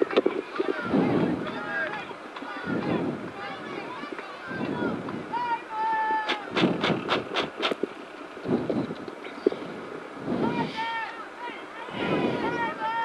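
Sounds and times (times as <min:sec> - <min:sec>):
people talking: 0:00.0 - 0:06.6, 0:10.3 - 0:13.0
rapid sharp taps: 0:06.3 - 0:07.9.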